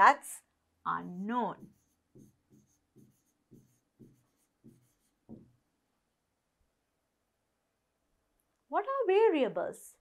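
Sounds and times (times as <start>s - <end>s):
pen strokes on screen: 1.0s - 5.6s.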